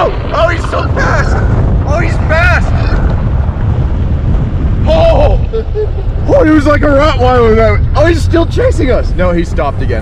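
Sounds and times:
tyres rumbling on dirt road: 0.0s - 10.0s
wind buffeting microphone: 0.0s - 10.0s.

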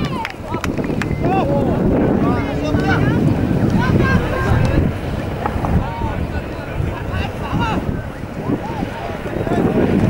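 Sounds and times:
wind buffeting microphone: 0.0s - 10.0s.

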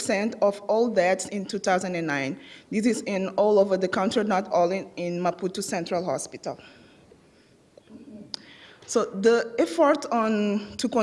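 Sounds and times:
person speaking: 0.0s - 6.7s
soft in-breath: 6.6s - 8.9s.

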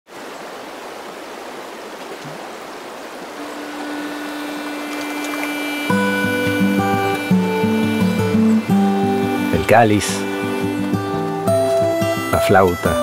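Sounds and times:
river water rushing: 0.1s - 13.0s
low held note: 3.4s - 12.4s
music with plucked notes: 3.4s - 13.0s.

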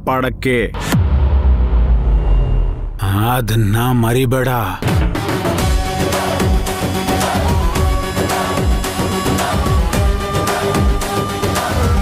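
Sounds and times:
deep low rumble score: 0.7s - 4.3s.

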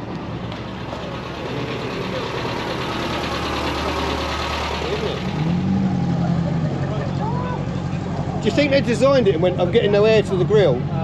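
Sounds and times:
small car engine running at low revs: 0.0s - 8.8s.

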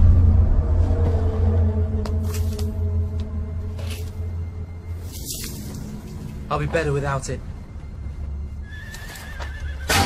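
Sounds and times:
horse whinnying: 8.6s - 10.0s.

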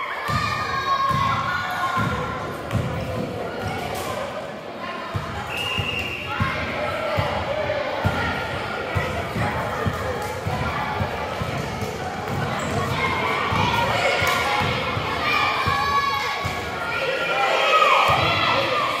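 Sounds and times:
basketball bouncing: 2.0s - 3.8s, 8.9s - 16.7s.

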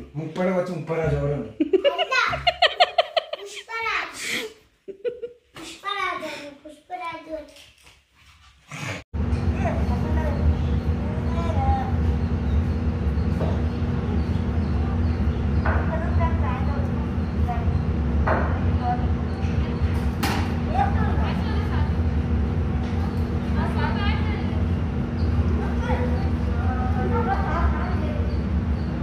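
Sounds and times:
steady low hum: 9.2s - 29.0s.

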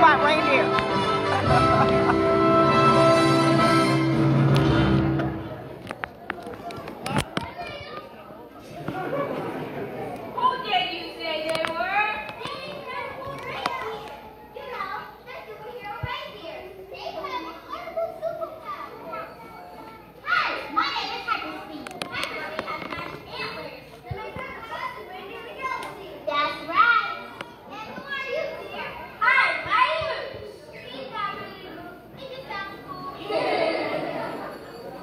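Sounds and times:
children talking and calling out: 5.9s - 35.0s.

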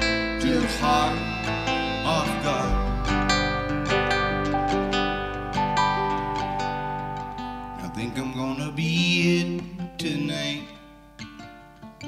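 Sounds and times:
drums: 0.0s - 6.8s
upright bass: 0.0s - 7.0s
strummed acoustic guitar: 0.0s - 12.0s.

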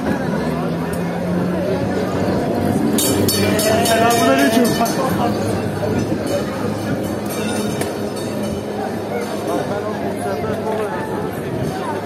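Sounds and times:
crowd voices: 0.0s - 12.0s
tram running hum: 0.0s - 12.0s
wheels clattering on rails: 0.0s - 12.0s.

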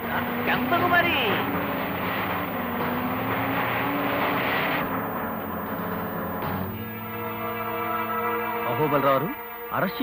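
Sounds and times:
car engine running: 0.0s - 9.7s
road noise: 0.0s - 10.0s.

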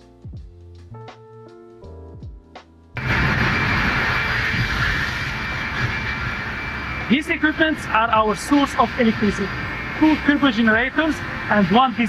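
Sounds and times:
background music held notes: 0.0s - 3.0s
steam turbine generators running: 3.0s - 12.0s.

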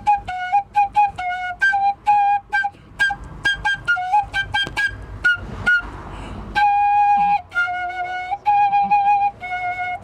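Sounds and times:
solo flute music: 0.0s - 10.0s.

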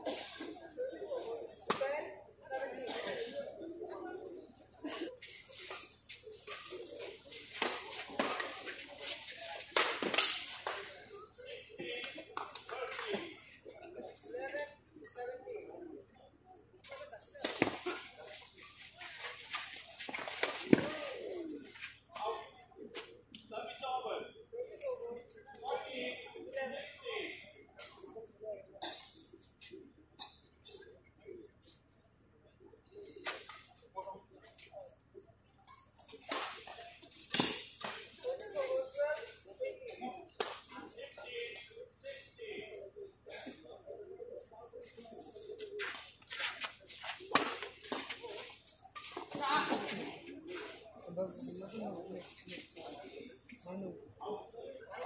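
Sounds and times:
racket hitting shuttlecock: 9.8s - 10.7s.

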